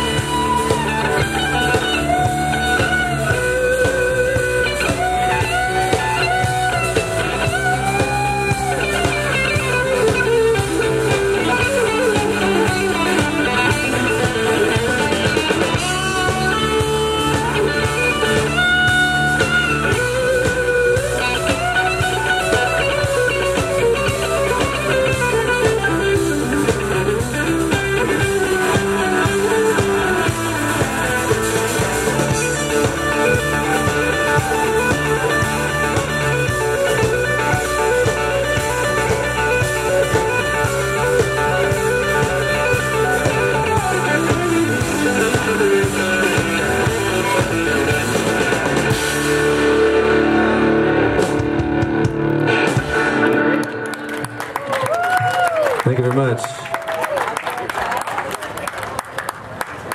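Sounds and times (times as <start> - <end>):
drum kit: 0.0 - 55.7
electric guitar bending notes: 0.0 - 56.3
bass guitar: 0.0 - 57.4.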